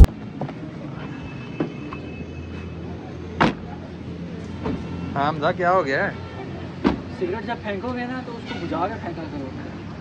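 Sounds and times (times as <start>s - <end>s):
vehicle engine humming: 0.0s - 1.0s.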